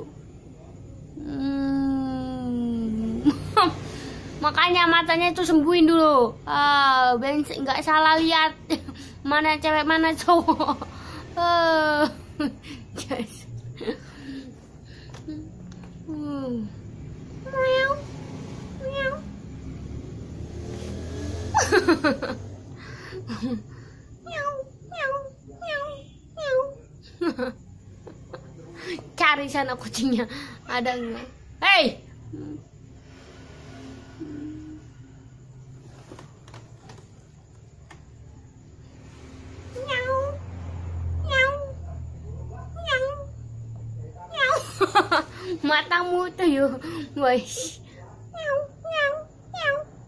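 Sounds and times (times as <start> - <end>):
cat meowing: 17.4 - 19.4, 24.2 - 26.8, 39.7 - 43.4, 44.3 - 44.7, 48.3 - 50.0.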